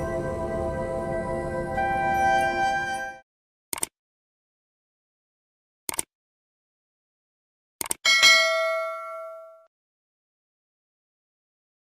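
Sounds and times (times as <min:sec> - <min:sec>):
bell-like chime ding: 0:01.8 - 0:03.2, 0:08.1 - 0:09.7
quick click: 0:03.7 - 0:03.9, 0:05.9 - 0:06.1.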